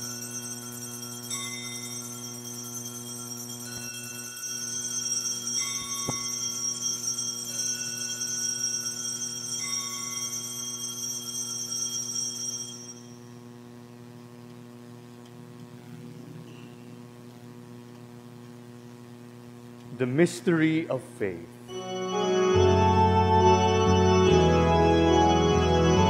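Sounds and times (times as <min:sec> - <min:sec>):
altar bells ringing: 0:00.0 - 0:13.4
steady electrical hum: 0:00.0 - 0:26.0.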